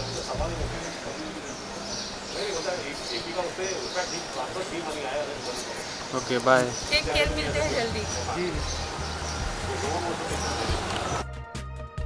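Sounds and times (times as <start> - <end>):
people talking in background: 0.0 - 11.2
outdoor street noise: 0.0 - 12.0.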